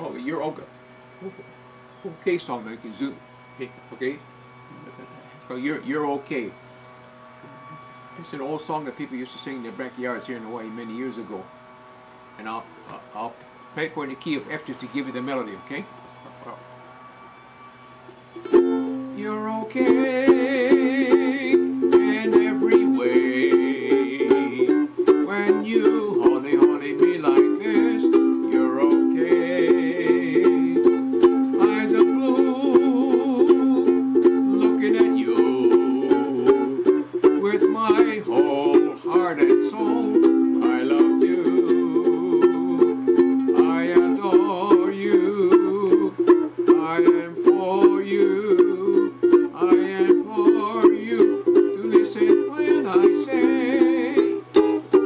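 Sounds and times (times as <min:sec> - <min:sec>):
ukulele strummed: 0:18.4 - 0:55.0.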